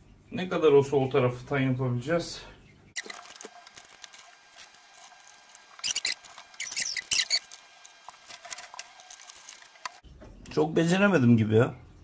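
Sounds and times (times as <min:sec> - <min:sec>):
wood scraping against glass: 0:03.0 - 0:10.0.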